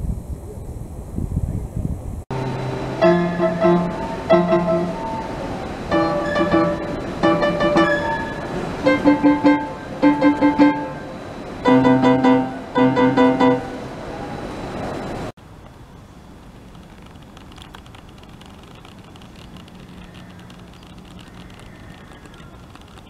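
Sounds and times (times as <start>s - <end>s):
piano repeated chords: 2.3s - 14.3s.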